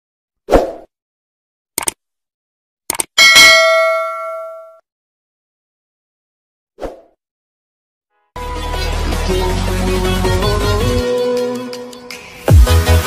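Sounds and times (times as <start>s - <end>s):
quick double clicks: 1.8s - 2.0s, 2.9s - 3.2s
notification bell ding: 3.2s - 4.8s.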